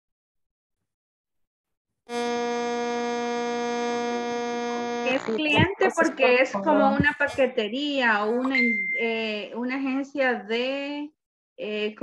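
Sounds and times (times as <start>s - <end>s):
loud electronic buzz: 2.1s - 7.3s.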